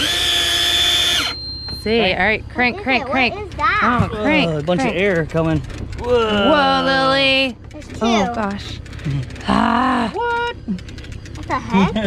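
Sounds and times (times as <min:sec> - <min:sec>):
fishing reel motor whining: 0:00.0 - 0:03.2, 0:03.8 - 0:12.0.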